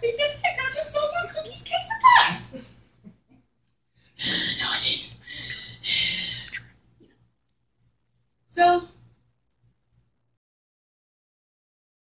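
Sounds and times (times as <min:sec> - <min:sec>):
woman speaking: 0:00.0 - 0:02.8, 0:08.5 - 0:09.0.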